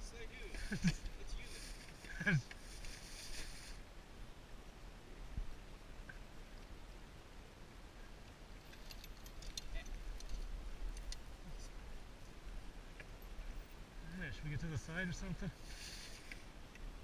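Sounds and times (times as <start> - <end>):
low steady rumble: 0.0 - 17.0.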